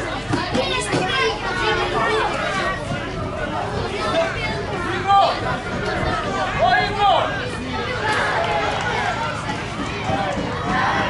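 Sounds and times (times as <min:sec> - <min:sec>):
young players shouting: 0:00.0 - 0:11.0.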